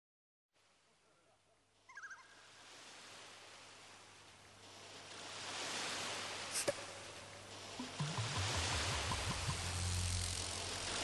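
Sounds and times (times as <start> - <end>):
steady hiss: 4.6 - 11.0.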